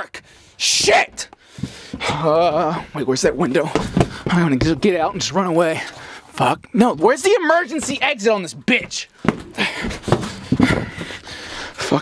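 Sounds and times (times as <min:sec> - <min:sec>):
man breathing hard: 0:00.2 - 0:00.6, 0:01.4 - 0:02.1, 0:05.9 - 0:06.4, 0:09.4 - 0:12.0
handling knocks and rattles: 0:03.2 - 0:05.3, 0:07.5 - 0:11.3.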